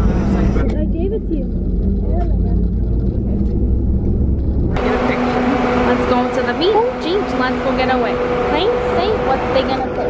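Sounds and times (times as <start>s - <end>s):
coach engine rumble: 0.0s - 10.0s
steady hum with low tone: 0.0s - 10.0s.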